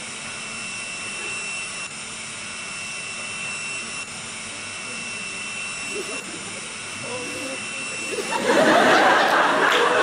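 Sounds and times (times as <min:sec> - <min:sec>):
whirring machine with high whine: 0:00.0 - 0:10.0.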